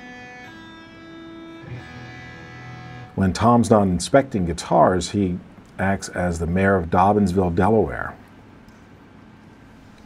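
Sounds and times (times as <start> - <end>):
electric guitar strings plucked: 0.0 - 4.0.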